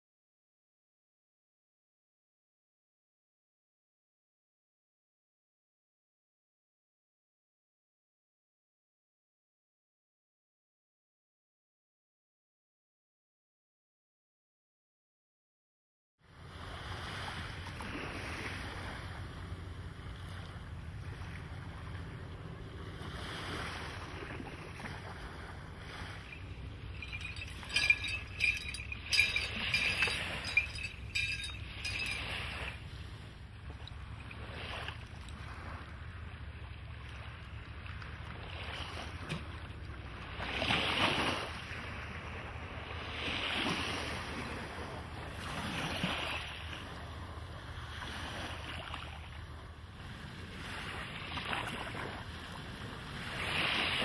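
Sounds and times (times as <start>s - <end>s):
water washing past hull: 16.5s - 33.2s
boat engine droning: 16.5s - 38.2s
sharp clicking and jingling: 26.2s - 32.8s.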